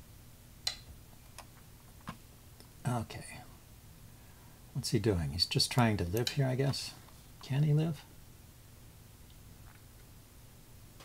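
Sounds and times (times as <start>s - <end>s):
man speaking: 2.8s - 3.6s, 4.8s - 8.1s.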